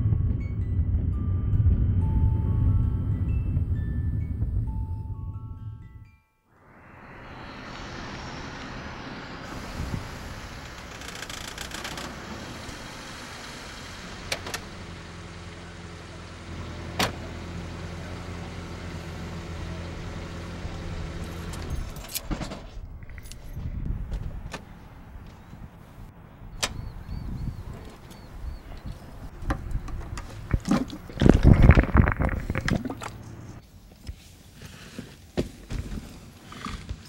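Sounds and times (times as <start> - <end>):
low steady hum: 0.0 - 10.6
outdoor ambient noise: 0.0 - 37.0.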